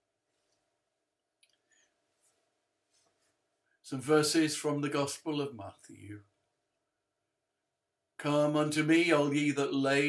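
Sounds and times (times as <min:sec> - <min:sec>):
man speaking: 0:03.8 - 0:06.2, 0:08.2 - 0:10.0.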